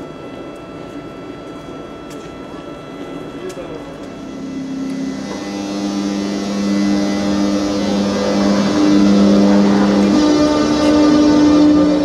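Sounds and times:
locomotive two-tone low hum: 0.0 - 12.0
passenger train passing: 0.0 - 12.0.

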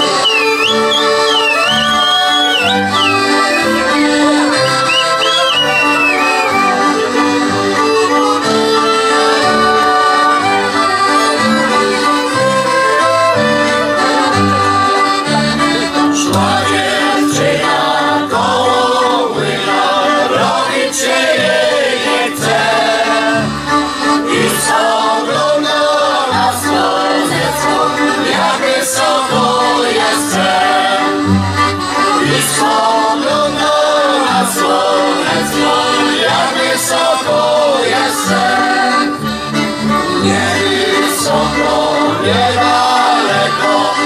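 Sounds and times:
voices singing along: 0.0 - 12.3, 12.9 - 44.0
folk band playing: 0.0 - 44.0.

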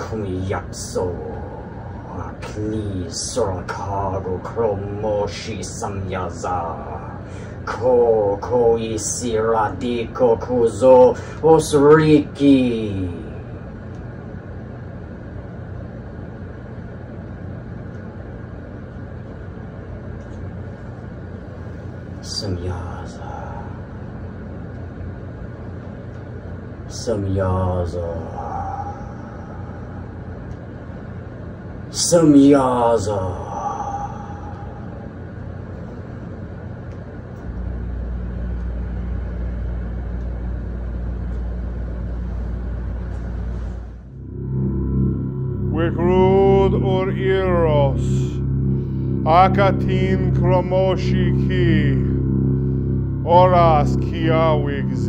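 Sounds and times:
low rumble: 0.0 - 12.0, 28.0 - 31.9, 33.2 - 55.0
faint hum: 0.0 - 55.0
held deep tones: 33.3 - 55.0.

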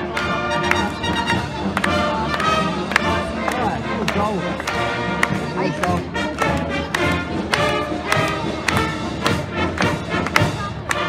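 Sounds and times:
brass marching band: 0.0 - 11.0.

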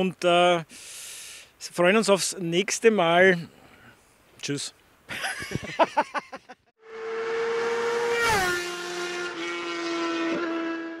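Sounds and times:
motorcycle passing by: 6.8 - 11.0.

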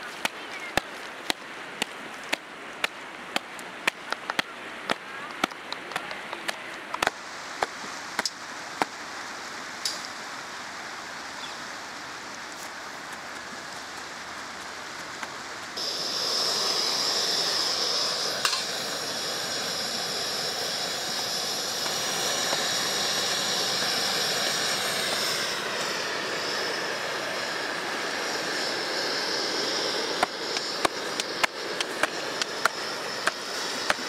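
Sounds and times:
gas stove burner hissing: 15.8 - 34.0.

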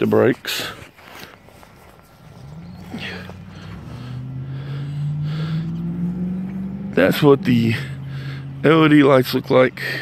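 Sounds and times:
vehicle engine approaching: 1.4 - 10.0.

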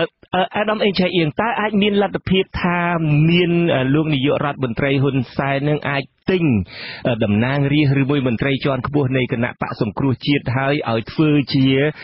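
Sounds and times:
man reading news: 0.0 - 12.0.

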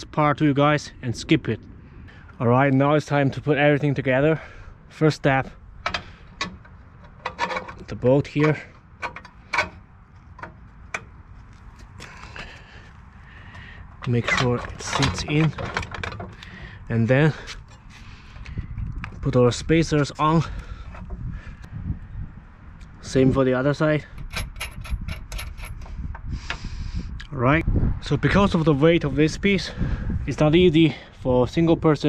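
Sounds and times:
bolt scraping in metal bracket: 5.8 - 9.8, 14.0 - 16.4, 24.2 - 25.9
metal washers and nuts clinking: 24.0 - 25.9.

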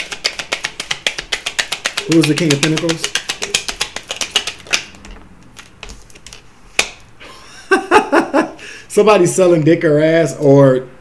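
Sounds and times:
cards being shuffled: 0.0 - 7.0.

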